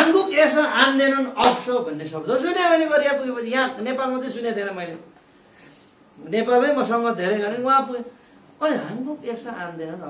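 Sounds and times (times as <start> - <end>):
man speaking animatedly: 0.0 - 5.0
hands slapping: 1.4 - 1.7.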